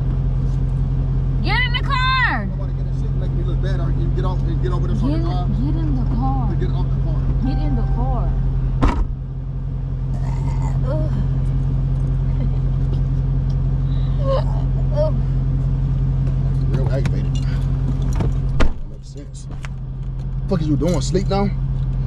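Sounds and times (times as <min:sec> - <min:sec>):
car engine idling: 0:00.0 - 0:22.0
car door slamming: 0:08.8 - 0:09.2, 0:18.0 - 0:19.7
sharp thump: 0:08.8 - 0:09.2, 0:18.2 - 0:19.8.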